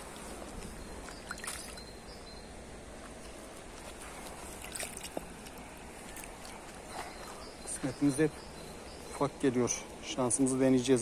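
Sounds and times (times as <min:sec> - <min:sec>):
faint water splashes: 0:00.0 - 0:01.9, 0:03.1 - 0:07.0
river water flowing over stones: 0:00.0 - 0:06.9.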